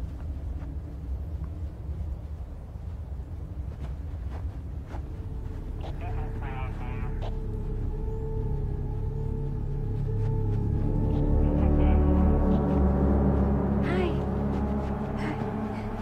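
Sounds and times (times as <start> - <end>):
low drone of film score: 0.0 - 16.0
low outdoor rumble: 0.0 - 16.0.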